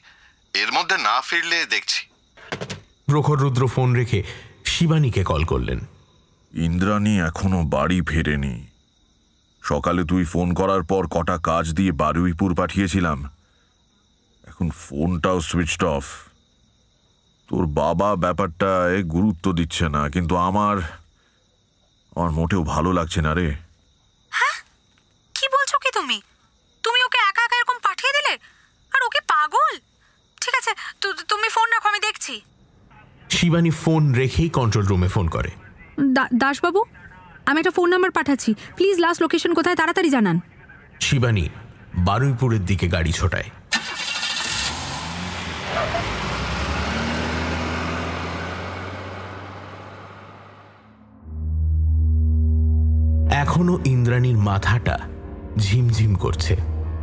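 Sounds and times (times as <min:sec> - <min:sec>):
crickets chirring: 0:00.0 - 0:50.7
vehicle driving away: 0:43.7 - 0:53.3
person speaking: 0:53.3 - 0:56.8.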